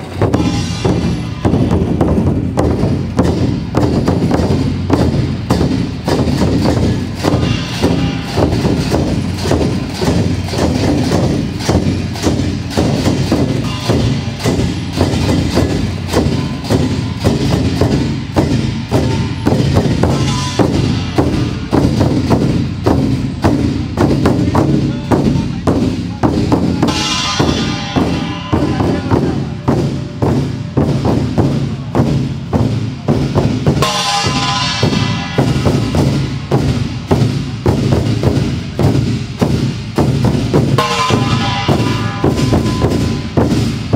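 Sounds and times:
barrel drums beating fast: 0.0s - 43.9s.

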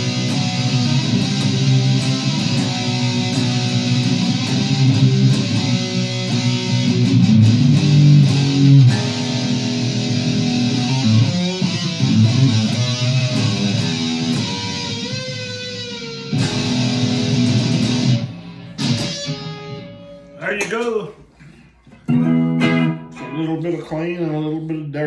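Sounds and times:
electric guitar playing: 0.0s - 20.7s, 21.9s - 24.6s.

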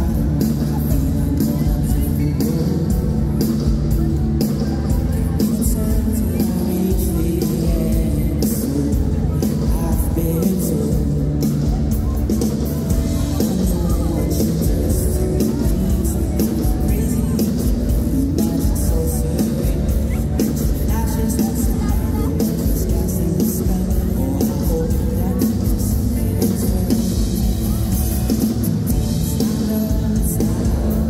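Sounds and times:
live band music through pa: 0.0s - 31.0s.

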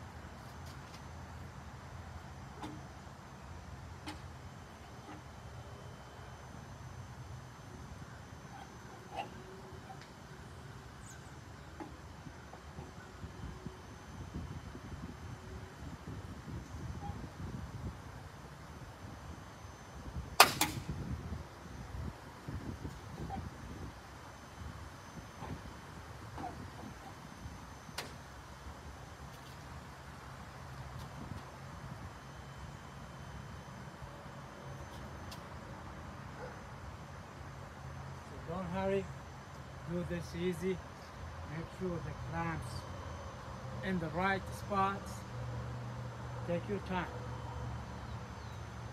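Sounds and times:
sharp plastic snap: 20.4s - 20.8s.

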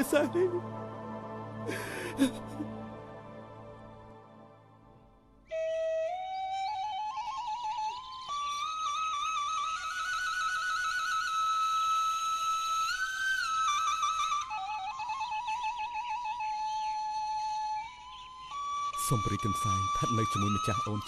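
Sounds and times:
solo flute melody with trills: 5.4s - 21.0s.

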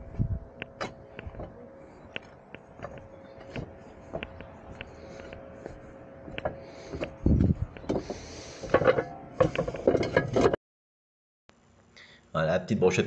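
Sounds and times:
roof tiles scraping and clattering: 7.9s - 10.6s.

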